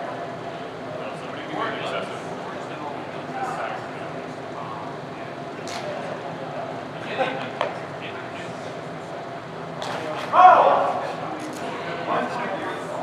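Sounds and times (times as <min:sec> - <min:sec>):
indistinct talking in a hall: 0:00.0 - 0:13.0.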